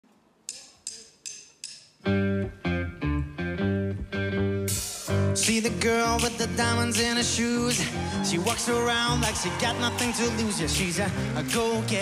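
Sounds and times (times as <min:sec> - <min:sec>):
sharp percussive clicks: 0:00.4 - 0:02.0.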